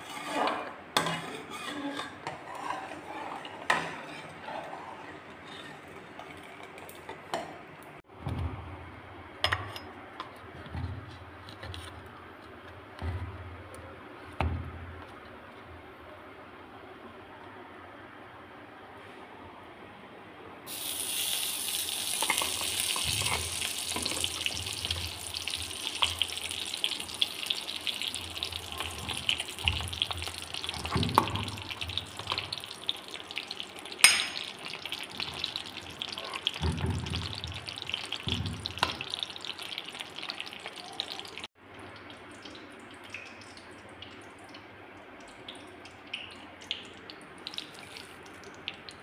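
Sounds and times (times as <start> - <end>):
ghee sizzling in a hot pan: 20.7 - 36.6, 37.2 - 41.5.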